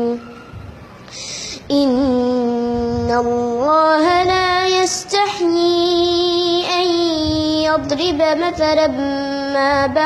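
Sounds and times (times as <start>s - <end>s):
boy chanting melodically: 0.0s - 10.0s.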